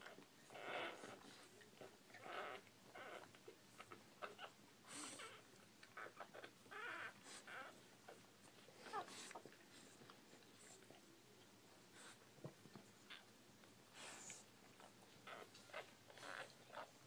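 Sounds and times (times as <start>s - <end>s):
puppy squeaks and whimpers: 0.0s - 8.2s, 8.8s - 9.5s, 15.2s - 17.0s.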